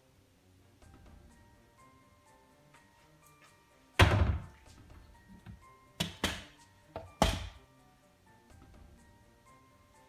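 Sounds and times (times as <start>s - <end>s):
faint background music: 0.0s - 10.0s
wooden cupboard doors thudding shut: 4.0s - 4.6s.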